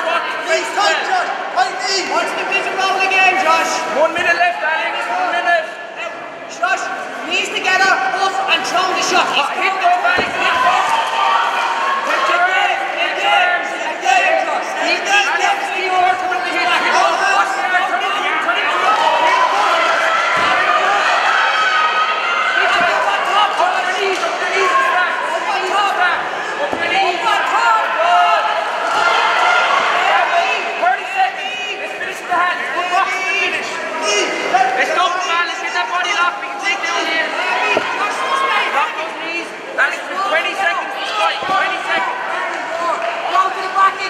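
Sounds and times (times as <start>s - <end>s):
crowd voices calling out: 0.0s - 44.0s
fighters thudding on mat: 10.1s - 10.7s.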